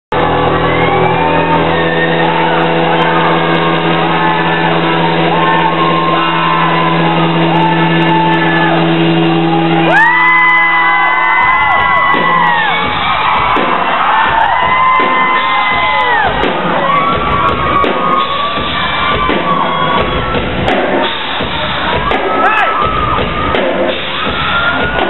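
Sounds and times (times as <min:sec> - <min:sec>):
rock band droning chord: 0:00.1 - 0:24.4
crowd whooping and shouting: 0:00.1 - 0:25.0.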